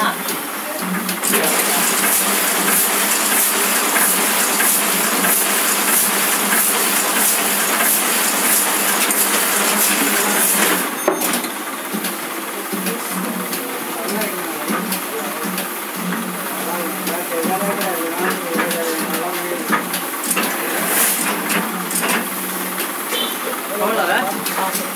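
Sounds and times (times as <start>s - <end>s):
printing press running: 0.0s - 24.9s.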